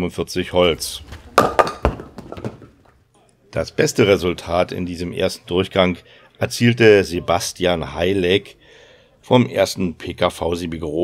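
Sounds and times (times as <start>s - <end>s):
ball striking wooden pins: 0.6s - 3.0s.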